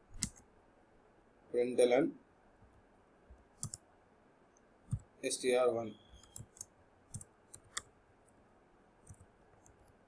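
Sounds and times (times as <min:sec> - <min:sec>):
computer keyboard keys clicking: 0:03.6 - 0:03.8, 0:06.2 - 0:07.8.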